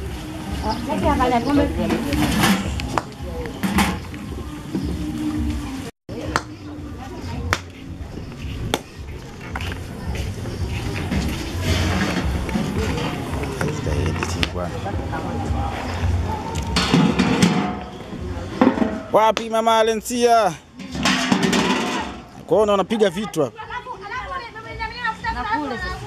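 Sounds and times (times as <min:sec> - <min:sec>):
music: 0:00.0 - 0:19.2, 0:23.6 - 0:26.0.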